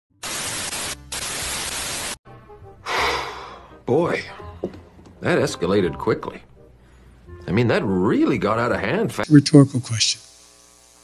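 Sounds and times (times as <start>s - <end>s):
faint background music: 2.3s - 10.2s
television static hiss: 9.2s - 11.0s.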